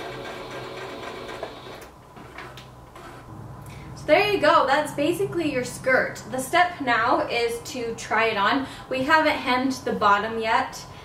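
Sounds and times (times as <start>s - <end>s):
electric sewing machine running: 0.0s - 1.9s.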